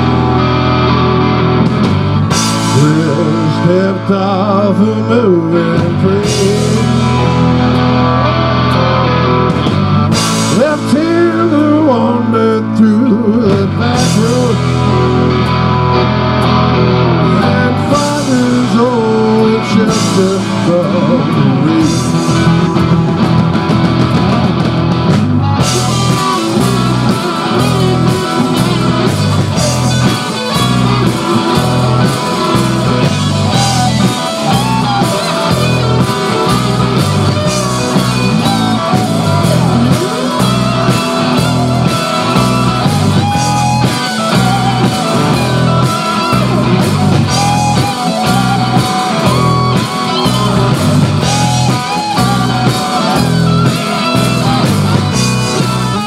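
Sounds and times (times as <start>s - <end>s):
drum kit beat: 0.0s - 56.0s
electric guitars: 0.0s - 56.0s.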